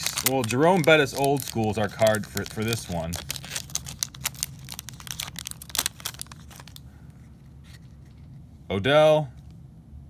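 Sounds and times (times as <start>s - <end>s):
wrapper crackling and tearing: 0.0s - 6.8s.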